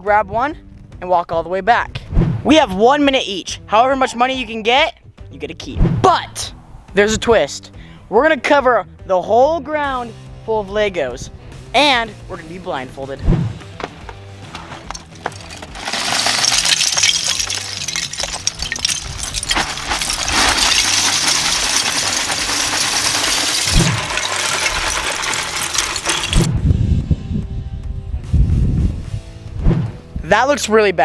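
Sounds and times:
background music with steady beat: 0.1s - 15.2s, 26.5s - 30.9s
plastic pieces clattering on asphalt: 14.5s - 26.5s.

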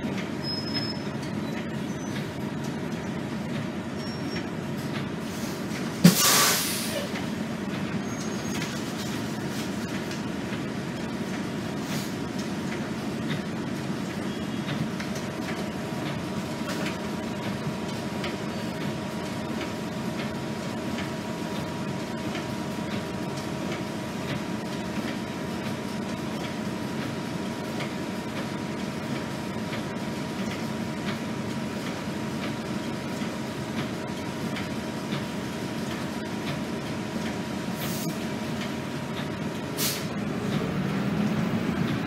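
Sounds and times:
bus diesel engine idling: 0.0s - 42.0s.

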